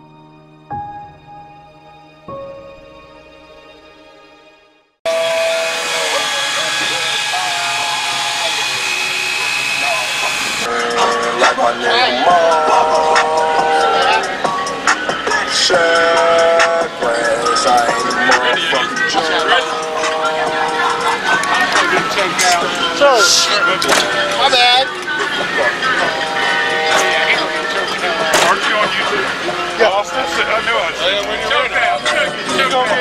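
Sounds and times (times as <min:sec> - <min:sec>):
voices: 0:05.4 - 0:33.0
people calling out: 0:17.0 - 0:32.6.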